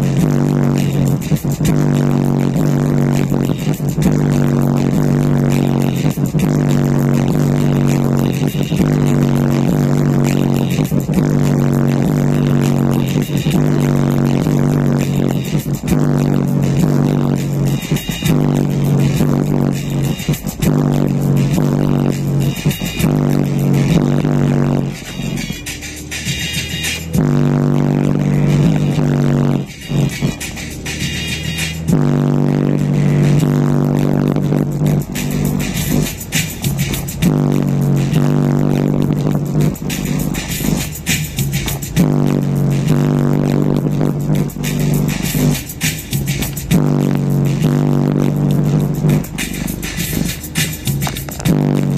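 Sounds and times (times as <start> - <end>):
bass-heavy music on car stereo: 0.0 - 51.9.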